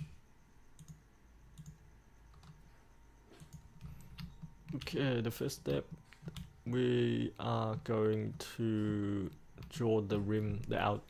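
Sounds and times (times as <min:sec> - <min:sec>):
computer mouse clicks: 0:00.7 - 0:02.6, 0:03.3 - 0:05.0.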